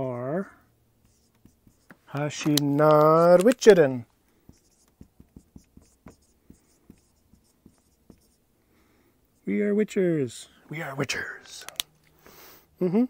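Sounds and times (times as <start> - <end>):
marker writing on whiteboard: 1.0 - 8.4.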